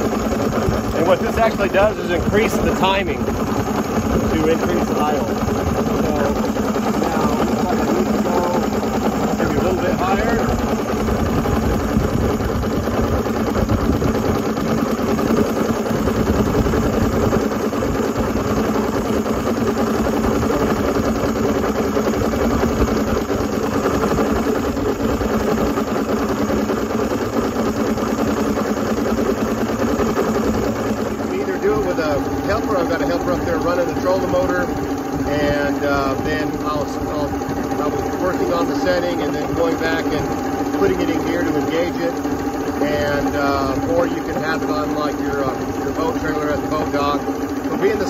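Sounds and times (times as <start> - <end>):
outboard motor idling: 0.0 - 48.0.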